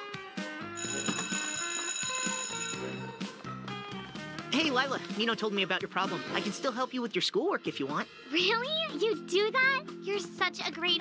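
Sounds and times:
light background music: 0:00.0 - 0:11.0
electric school bell ringing: 0:00.8 - 0:03.6.

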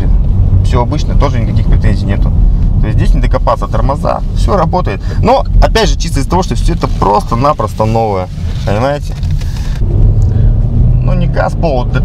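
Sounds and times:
road noise inside car: 0:00.0 - 0:12.0
car engine accelerating: 0:05.4 - 0:12.0.

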